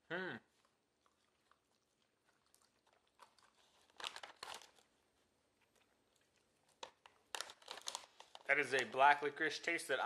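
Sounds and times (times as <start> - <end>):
chewing soft candy: 0.5 - 8.9
crackly sounds: 0.6 - 9.3.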